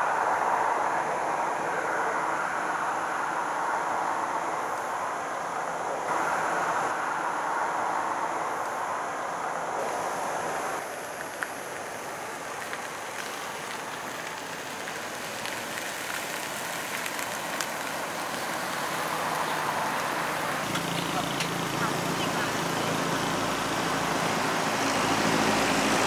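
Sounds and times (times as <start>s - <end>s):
road traffic hiss: 0.0s - 26.0s.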